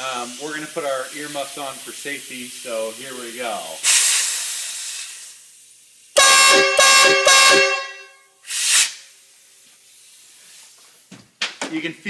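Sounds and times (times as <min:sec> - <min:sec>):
hissing air bursts: 0:00.0 - 0:07.8, 0:08.4 - 0:11.1
train air horn blasts: 0:06.2 - 0:08.3.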